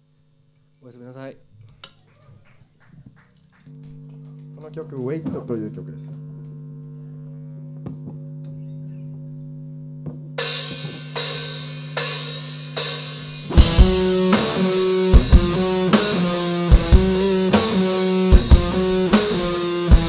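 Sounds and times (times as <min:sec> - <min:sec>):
amplifier hum: 0:00.0 - 0:02.1, 0:02.9 - 0:20.0
electric guitar chords: 0:03.7 - 0:20.0
bass and drum kit: 0:10.0 - 0:20.0.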